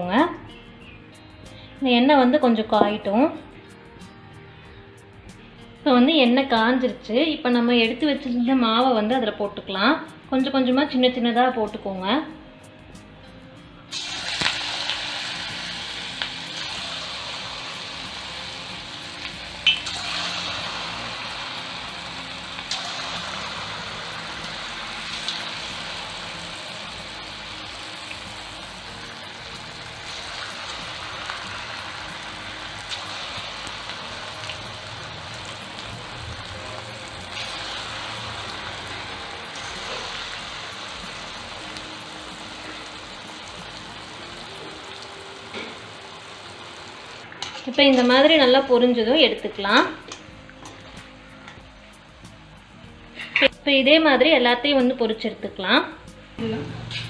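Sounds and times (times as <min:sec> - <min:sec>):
batter deep-frying in oil: 0:13.9 - 0:51.0.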